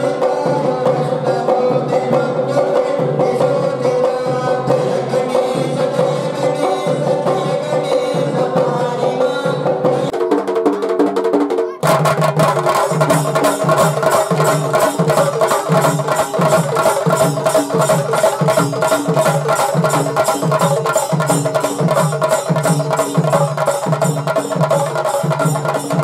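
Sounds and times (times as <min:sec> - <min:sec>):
barrel drums beating fast rhythm: 0:00.0 - 0:26.0.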